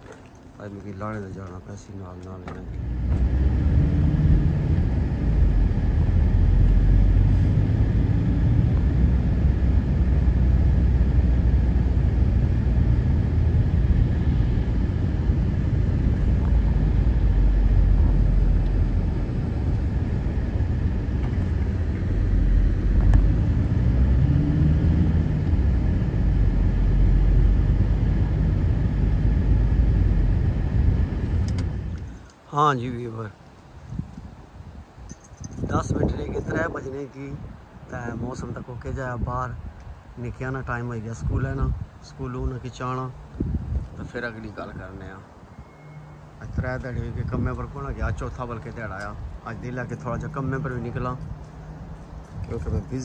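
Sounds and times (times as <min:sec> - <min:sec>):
engine and road noise in car: 0:00.0 - 0:32.7, 0:33.4 - 0:53.0.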